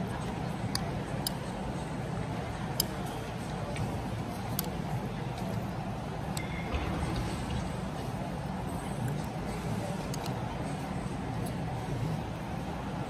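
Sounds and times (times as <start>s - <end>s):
background murmur of voices: 0.0s - 13.0s.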